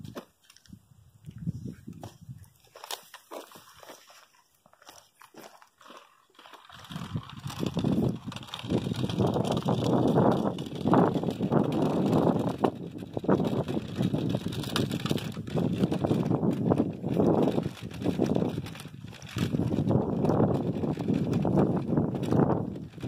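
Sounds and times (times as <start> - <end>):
measuring wheel rolling over grit: 6.6 - 23.0.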